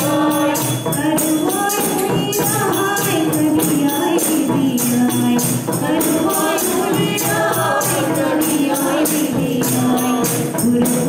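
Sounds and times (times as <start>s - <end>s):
group singing devotional song: 0.0s - 11.0s
tambourine beaten: 0.0s - 11.0s.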